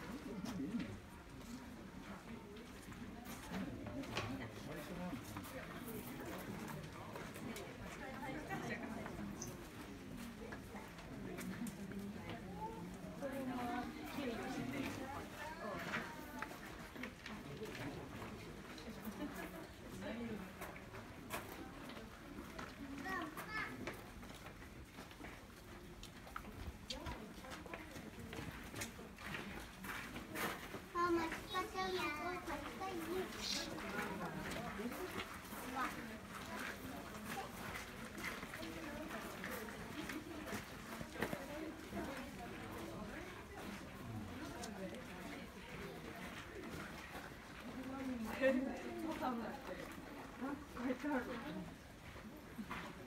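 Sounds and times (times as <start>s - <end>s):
people's voices nearby: 0.0s - 53.0s
child's high-pitched voice: 23.0s - 23.8s, 31.0s - 33.6s.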